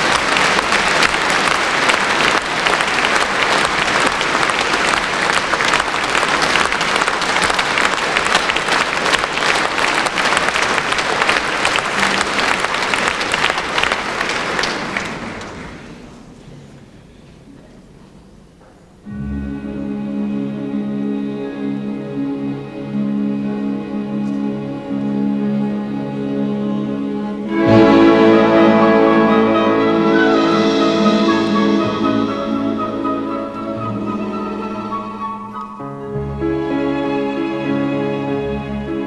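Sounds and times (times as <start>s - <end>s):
audience applauding: 0.0s - 16.0s
orchestra sustained string notes: 19.1s - 39.0s.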